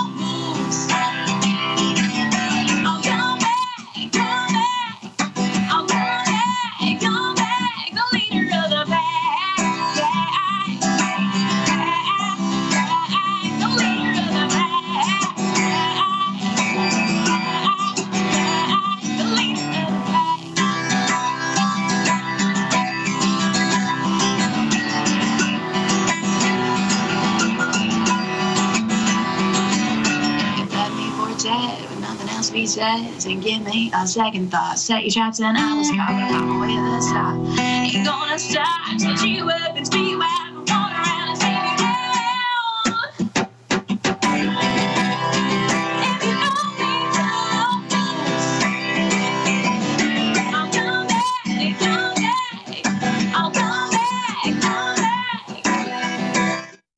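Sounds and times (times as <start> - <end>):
woman singing with vibrato: 0.0 - 43.3, 44.3 - 56.6
acoustic guitar strumming: 0.0 - 56.8.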